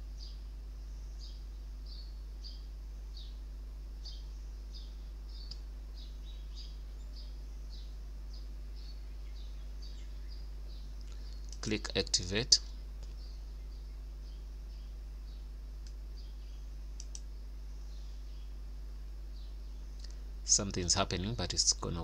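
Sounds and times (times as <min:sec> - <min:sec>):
small bird chirping: 0:00.0 - 0:22.0
steady low hum: 0:00.0 - 0:22.0.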